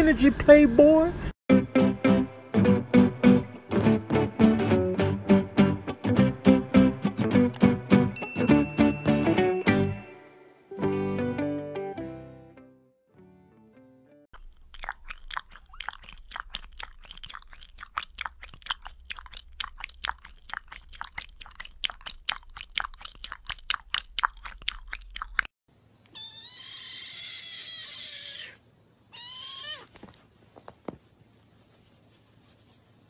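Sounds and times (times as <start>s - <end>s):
cat licking fur: 14.4s - 25.4s
cat meowing: 26.2s - 30.0s.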